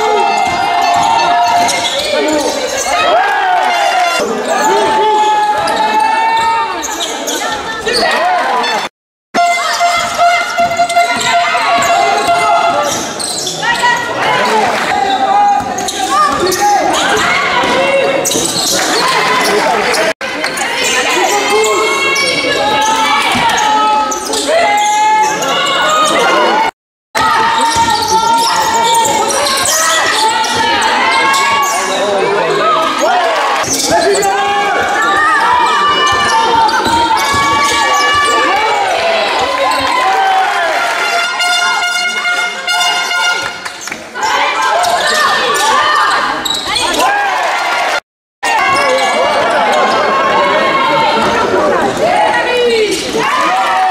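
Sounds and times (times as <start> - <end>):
voices echoing in sports hall: 0.0 - 53.9
basketball bouncing on court: 27.3 - 30.6.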